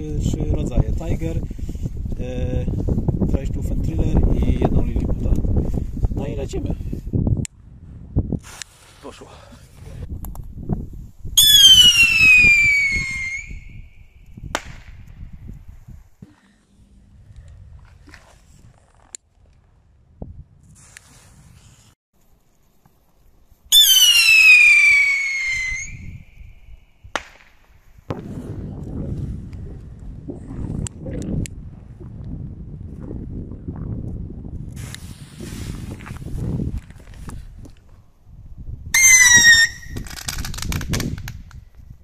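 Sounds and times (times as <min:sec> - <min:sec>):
firework rocket whistle falling: 0:11.4 - 0:13.9, 0:23.7 - 0:26.5, 0:39.0 - 0:40.0
firework bang: 0:27.1 - 0:28.8.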